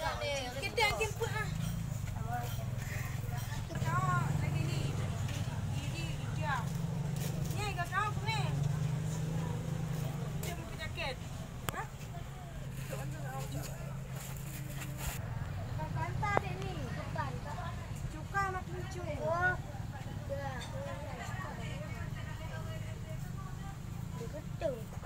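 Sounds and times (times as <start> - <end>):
children talking and calling out: 15.7 - 22.2.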